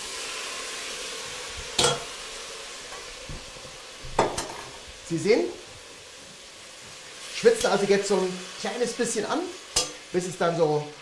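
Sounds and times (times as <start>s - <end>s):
fish sizzling in hot oil: 0.0s - 11.0s.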